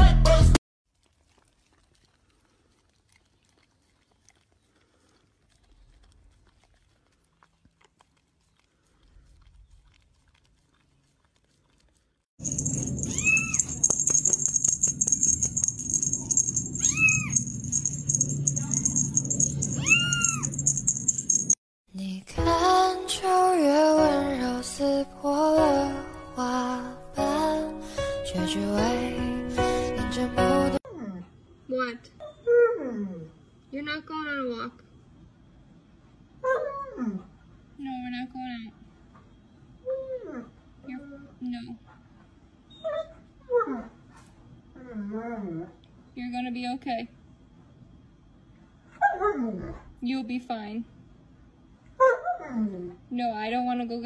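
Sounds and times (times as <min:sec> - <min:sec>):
low background hum: 0:12.4 - 0:21.6
kitten meowing: 0:13.0 - 0:13.6, 0:16.8 - 0:17.3, 0:19.8 - 0:20.4.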